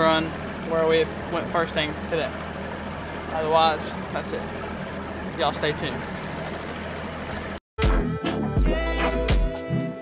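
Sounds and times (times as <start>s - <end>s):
outboard motor running: 0.0s - 7.6s
water noise: 0.0s - 7.6s
music: 7.8s - 10.0s.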